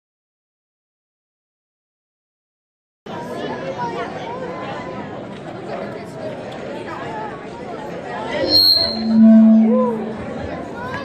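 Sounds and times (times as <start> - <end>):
crowd chatter: 3.1 - 11.0.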